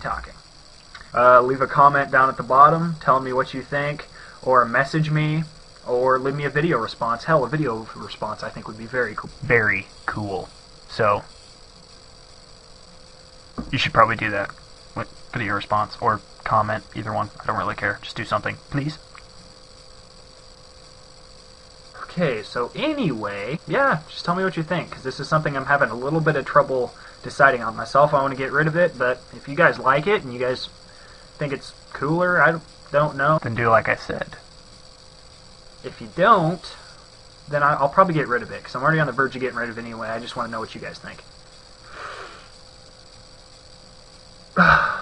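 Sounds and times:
faint hum: 0.0 - 45.0
low hiss: 0.0 - 45.0.

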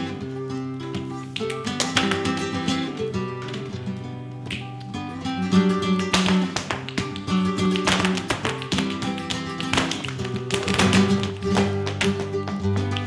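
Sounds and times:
flamenco guitar: 0.0 - 13.0
shoes stamping on floor: 6.1 - 13.0.

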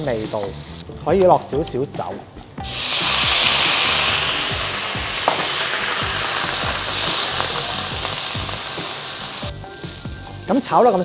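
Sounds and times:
loud sizzle in a hot wok: 0.0 - 0.8, 2.6 - 11.0.

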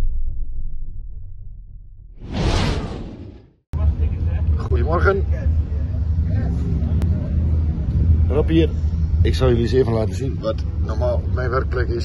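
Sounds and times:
low rumble: 0.0 - 12.0
whoosh: 2.2 - 3.6.

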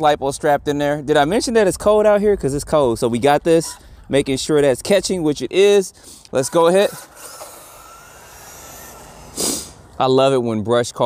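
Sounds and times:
electric motor whine: 6.5 - 10.0
breath-like hiss near microphone: 7.9 - 10.0.

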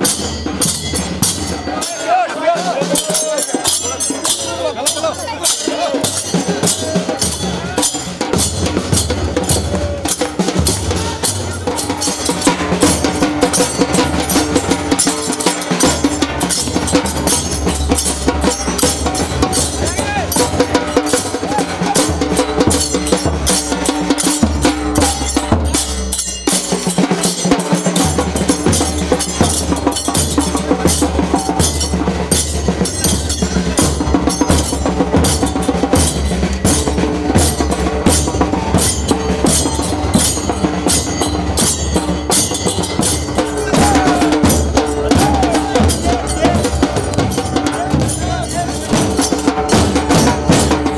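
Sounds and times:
brass hand cymbals clashing: 0.0 - 50.9
drums beating: 0.0 - 50.9.

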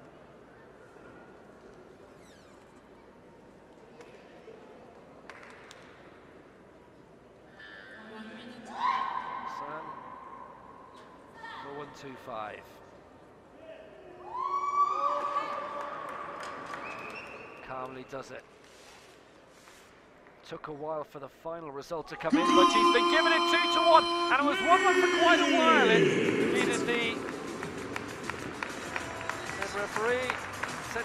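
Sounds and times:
competition hall background noise: 0.0 - 14.4, 22.0 - 31.0
spectators shouting encouragement: 22.3 - 28.3.

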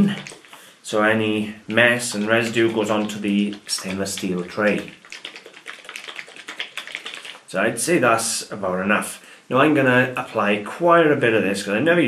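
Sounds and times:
small bottle rattling when shaken: 0.0 - 0.7, 1.7 - 7.5.

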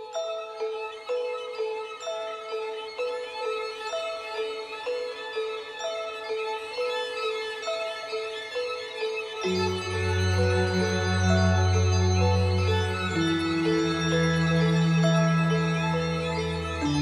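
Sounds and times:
high ringing notes: 0.0 - 17.0.

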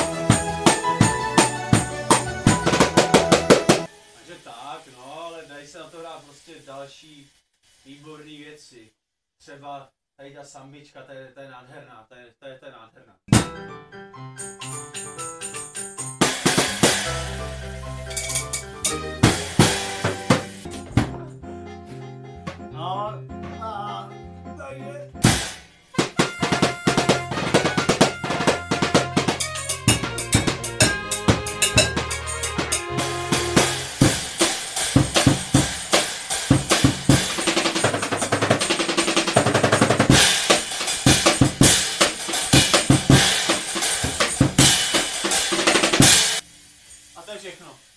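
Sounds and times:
keyboard backing track: 0.0 - 3.9, 13.3 - 44.8
plastic bottle drums beat: 0.0 - 3.9, 14.6 - 21.4, 22.4 - 22.8, 25.2 - 46.4.

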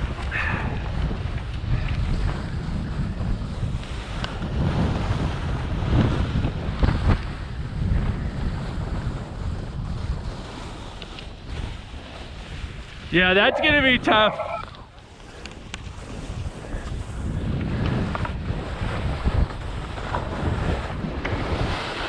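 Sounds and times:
wind on microphone: 0.0 - 22.0
skis scraping on snow: 2.0 - 22.0.

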